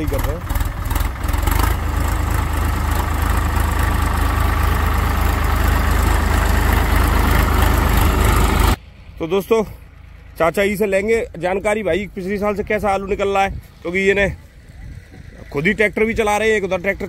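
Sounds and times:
tractor diesel engine rumbling: 0.0 - 17.0.

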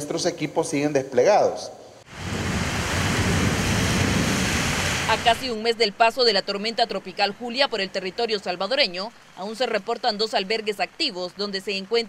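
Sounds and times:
heavy rain on street: 2.1 - 12.0.

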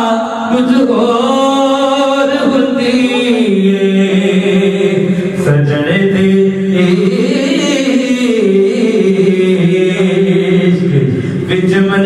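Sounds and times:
man chanting devotional song: 0.0 - 12.0.

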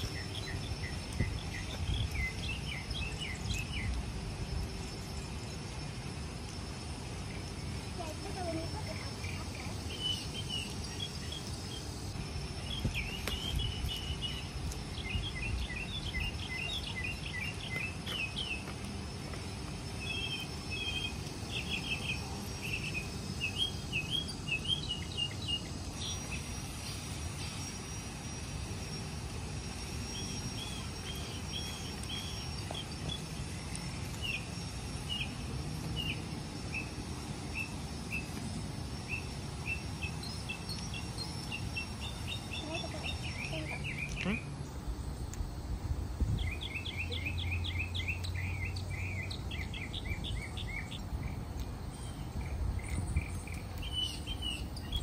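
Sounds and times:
small birds chirping: 0.0 - 29.0, 29.6 - 45.5, 46.2 - 55.0
high insect whine: 0.0 - 55.0.

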